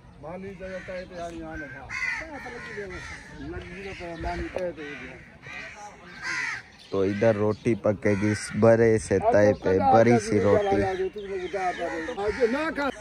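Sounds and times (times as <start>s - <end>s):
crows cawing: 0.4s - 13.0s
people talking: 7.0s - 13.0s.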